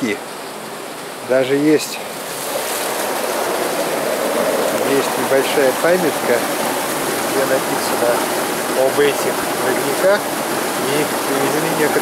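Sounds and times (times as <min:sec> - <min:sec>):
spring water rushing: 0:00.0 - 0:12.0.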